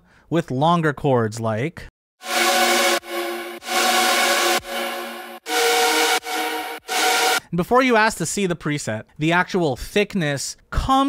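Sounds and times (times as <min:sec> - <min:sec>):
synth supersaw chords: 0:02.2 - 0:07.4.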